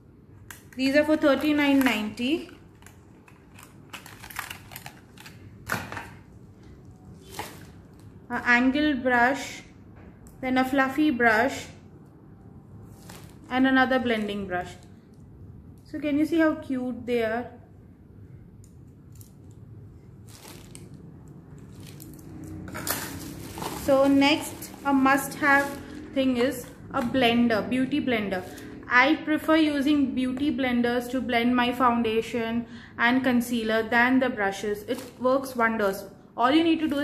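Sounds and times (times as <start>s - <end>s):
low room hum: 0.0s - 37.0s
makeup brushes clicking and rustling: 0.4s - 6.2s, 21.6s - 27.2s, 34.8s - 35.3s
plastic packaging crinkling: 0.6s - 8.2s, 12.9s - 13.6s, 20.2s - 26.0s, 34.9s - 35.3s.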